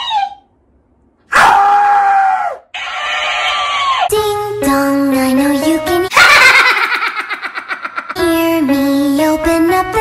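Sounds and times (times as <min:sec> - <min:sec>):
man screaming: 0:01.3 - 0:02.6.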